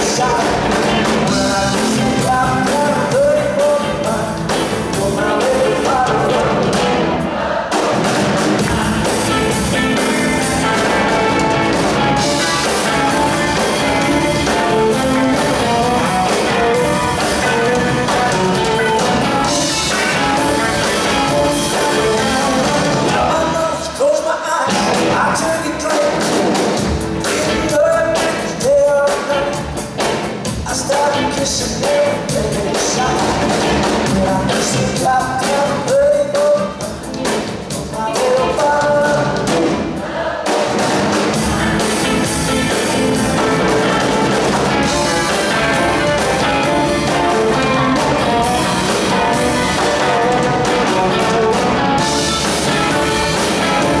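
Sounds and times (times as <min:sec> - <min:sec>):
electric guitar lead line: 0:00.0 - 0:23.9, 0:24.7 - 0:28.6, 0:36.6 - 0:54.0
bass guitar: 0:00.0 - 0:24.0, 0:24.7 - 0:54.0
drums: 0:00.0 - 0:54.0.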